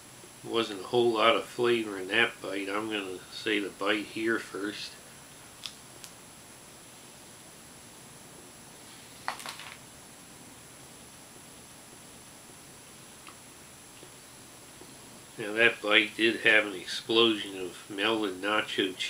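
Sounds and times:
room hiss: 0:00.0 - 0:19.0.

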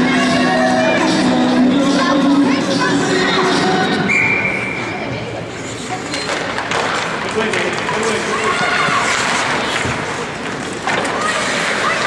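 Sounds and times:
skates scraping on ice: 0:05.6 - 0:12.0.

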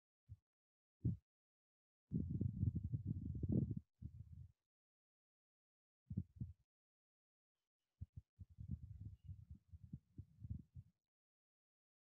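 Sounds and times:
faint low thuds and rumble: 0:02.2 - 0:03.8.

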